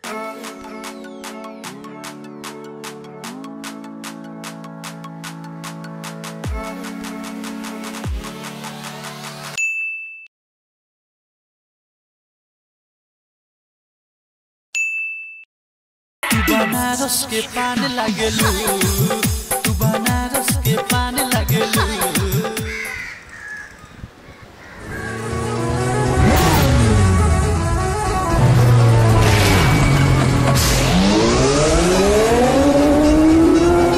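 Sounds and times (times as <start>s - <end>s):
electronic background music: 0.0s - 9.6s, 16.2s - 22.8s, 25.1s - 33.9s
high ding: 9.6s - 10.3s, 14.8s - 15.5s
faint bird calls: 22.6s - 25.5s.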